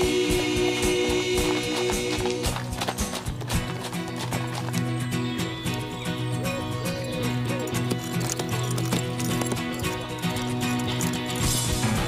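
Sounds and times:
background pop music: 0.0 - 3.8
horse hoofbeats on gravel: 0.7 - 12.0.

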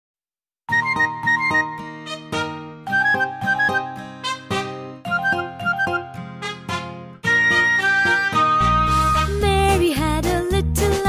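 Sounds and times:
instrumental children's song: 0.7 - 11.0.

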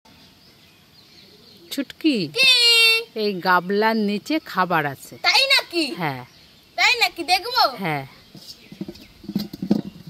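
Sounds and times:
soft rustling: 8.1 - 10.0.

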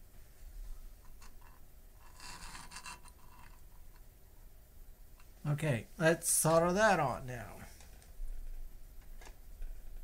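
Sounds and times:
circuit board scraping on desk: 2.0 - 3.1.

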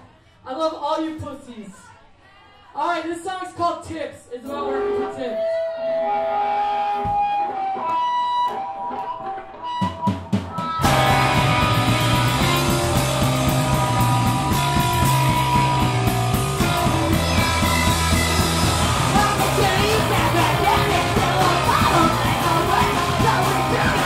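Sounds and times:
live rock band playing: 5.5 - 24.0
drum hits: 10.1 - 24.0
electric guitar ringing notes: 10.8 - 24.0.

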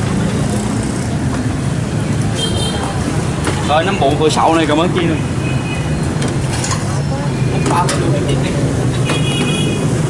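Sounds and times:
background chatter: 0.0 - 5.4, 6.0 - 9.0
motorbike traffic hum: 0.0 - 10.0.

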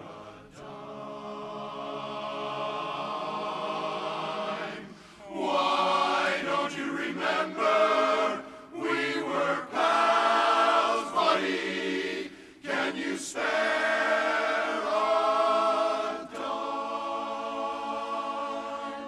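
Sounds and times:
men's chorus singing a cappella: 0.0 - 19.0.

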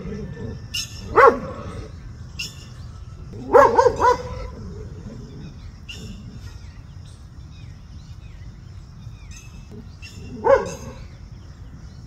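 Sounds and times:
dog barking: 1.1 - 1.8, 3.4 - 4.8, 10.3 - 11.0.

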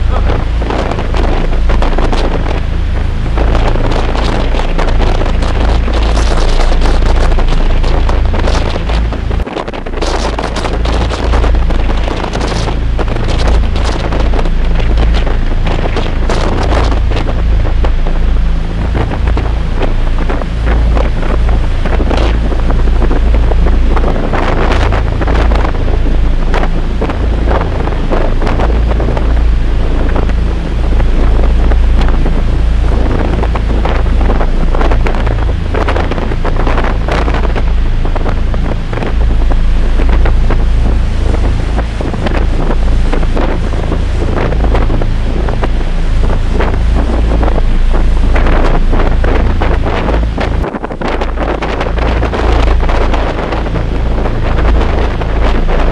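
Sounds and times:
sea rushing along hull: 0.0 - 55.9
ship low hum: 0.0 - 55.9
wind buffeting microphone: 0.0 - 55.9.

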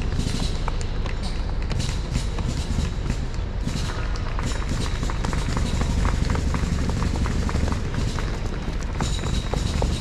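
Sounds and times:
running footsteps on asphalt: 0.0 - 10.0
steady low rumble: 0.0 - 10.0.

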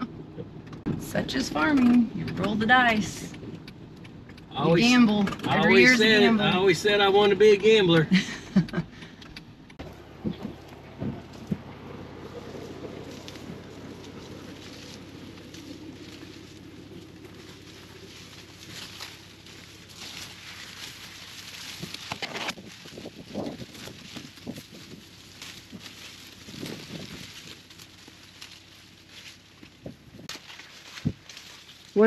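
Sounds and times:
dry corn leaves rustling: 2.6 - 8.4, 9.8 - 32.0.

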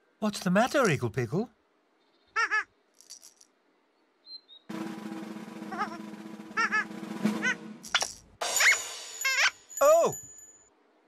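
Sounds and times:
drum roll: 4.7 - 9.4
held music: 4.7 - 10.4.

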